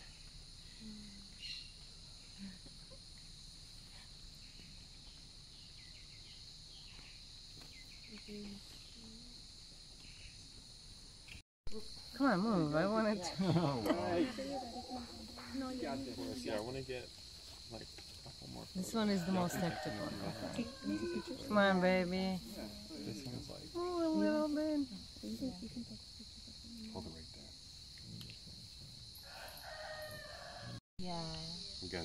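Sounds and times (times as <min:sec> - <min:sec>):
high-pitched insect drone: 0:00.0 - 0:32.0
woman talking in sing-song way: 0:23.8 - 0:26.0.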